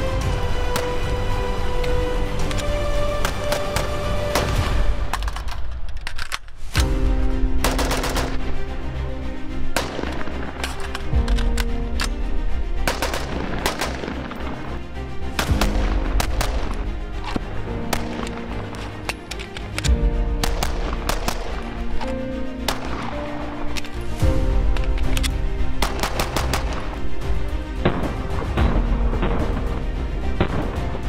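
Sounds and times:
background music with held notes: 0:00.0 - 0:31.0
gunshots: 0:07.6 - 0:08.4, 0:12.8 - 0:14.5, 0:15.4 - 0:16.8, 0:25.8 - 0:27.0.

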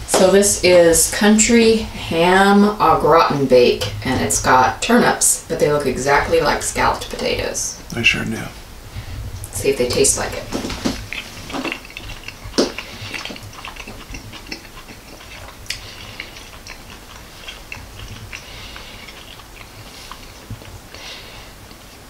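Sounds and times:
mouth clicks: 0:09.4 - 0:22.0
person chewing food: 0:10.3 - 0:22.0.

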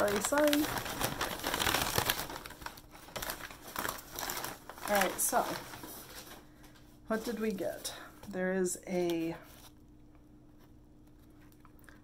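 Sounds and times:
packing paper crumpling: 0:00.0 - 0:07.9.

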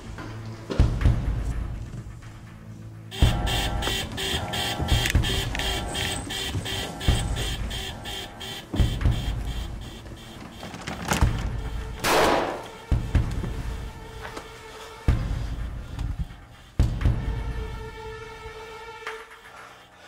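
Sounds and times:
tense film score music: 0:00.0 - 0:20.0.

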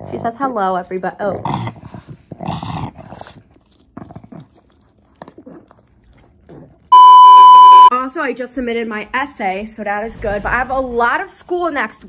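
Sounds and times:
steady beep tone: 0:06.9 - 0:07.9.

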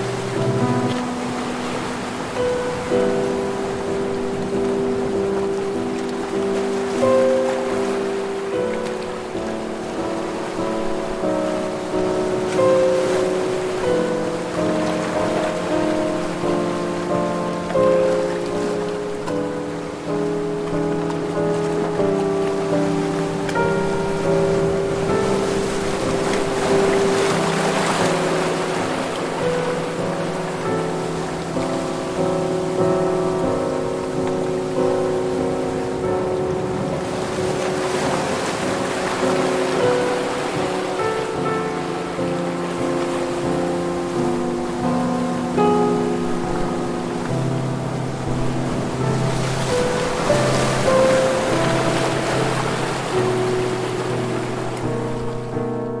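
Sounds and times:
ocean waves washing in: 0:00.0 - 0:56.0
soft instrumental music: 0:00.0 - 0:56.0.

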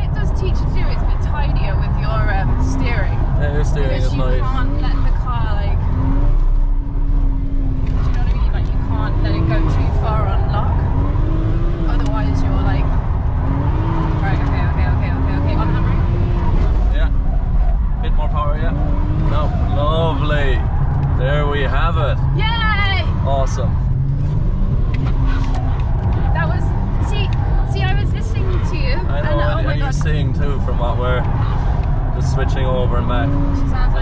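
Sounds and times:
car engine revving: 0:00.0 - 0:34.0
road and tyre rumble: 0:00.0 - 0:34.0.

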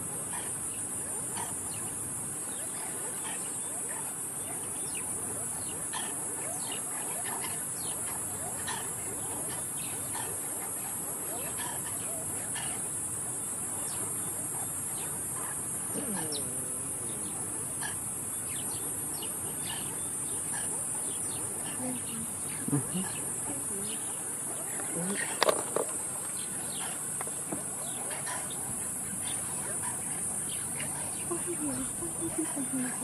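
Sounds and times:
night insects droning: 0:00.0 - 0:33.0
mongooses chirping alarm calls: 0:02.6 - 0:33.0.

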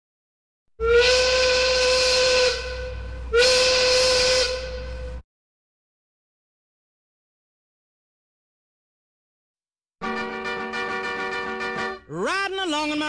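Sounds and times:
loud whistle blasts: 0:00.8 - 0:05.2.

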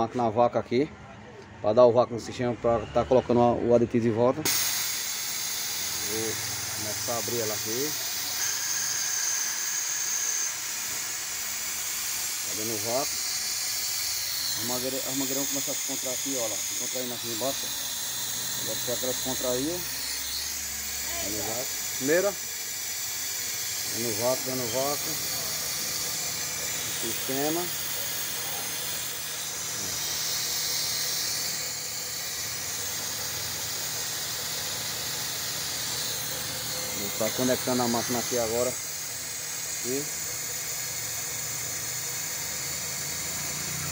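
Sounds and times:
air tool hissing: 0:04.4 - 0:43.9
high whistle: 0:04.5 - 0:11.4, 0:12.0 - 0:38.8.

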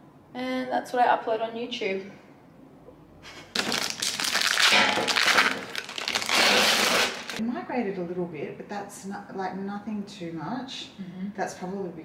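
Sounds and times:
rustling and crackling handling noise: 0:03.6 - 0:07.4.

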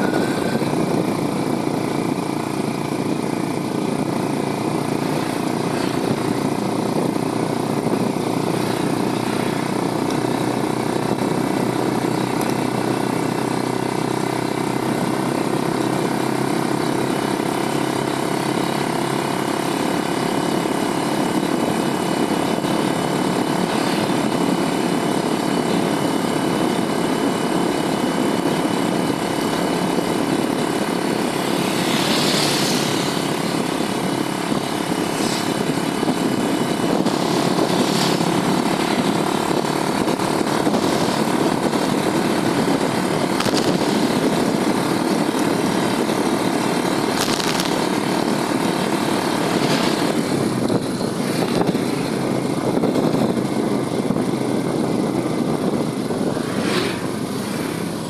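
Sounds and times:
motorcycle engine running: 0:00.0 - 0:58.0
road noise rushing: 0:00.0 - 0:58.0.

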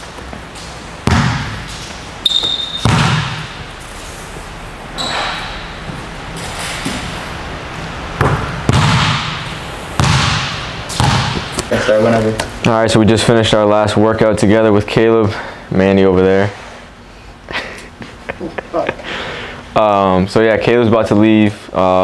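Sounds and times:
basketball bouncing on wooden floor: 0:01.0 - 0:03.6, 0:08.2 - 0:11.6
high squeak: 0:02.2 - 0:02.9, 0:05.0 - 0:05.6.

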